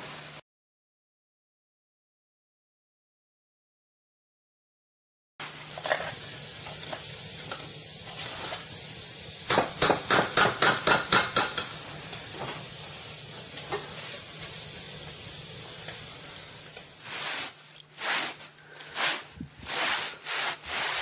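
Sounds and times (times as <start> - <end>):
steady hiss: 5.4 - 21.0.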